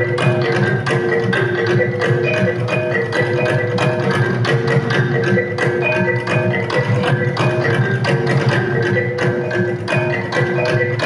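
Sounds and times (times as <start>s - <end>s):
gongs and mallet percussion: 0.0s - 11.0s.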